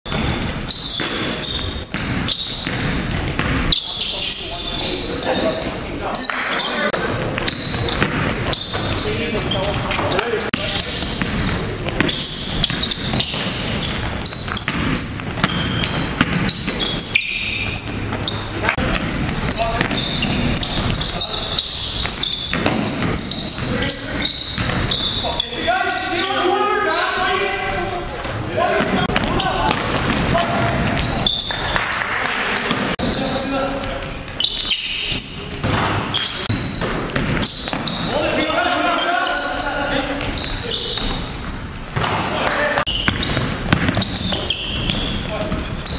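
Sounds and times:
players calling out: 0:00.1 - 0:45.9
basketball bouncing on hardwood floor: 0:01.9 - 0:03.7, 0:11.1 - 0:16.9, 0:42.9 - 0:45.7.

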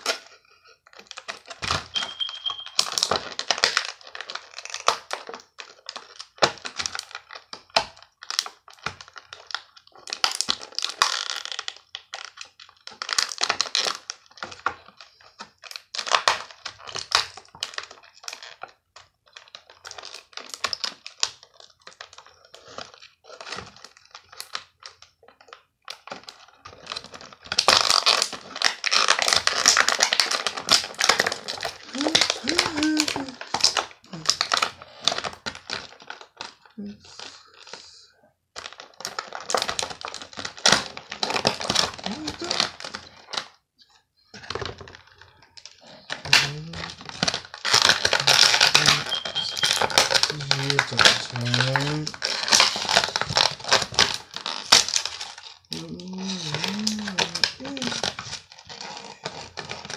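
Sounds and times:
plastic packaging crinkling: 0:00.0 - 0:59.9.

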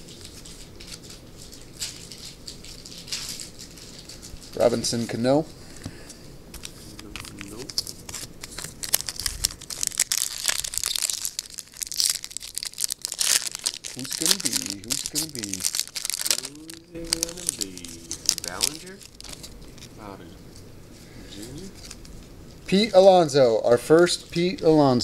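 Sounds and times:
foil wrapper tearing and crinkling: 0:00.0 - 0:05.0, 0:06.6 - 0:19.9
person murmuring: 0:14.0 - 0:15.6, 0:16.3 - 0:18.6.

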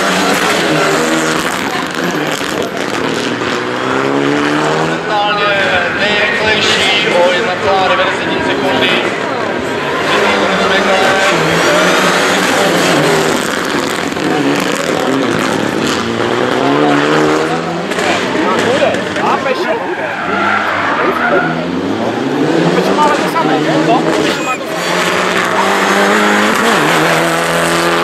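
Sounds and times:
rally car engine revving: 0:00.0 - 0:28.0.

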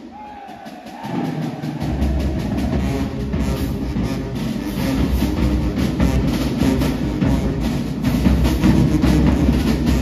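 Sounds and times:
marching band playing: 0:00.0 - 0:10.0
steady drum beat: 0:00.0 - 0:10.0.

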